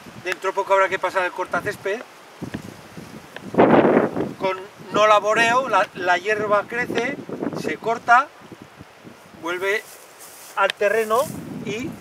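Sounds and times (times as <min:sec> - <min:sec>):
wind buffeting microphone: 0:00.0 - 0:10.0, 0:11.0 - 0:12.0.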